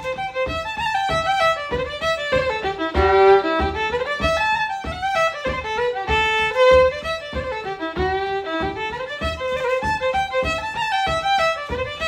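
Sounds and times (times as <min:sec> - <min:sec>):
solo fiddle playing: 0:00.0 - 0:12.0.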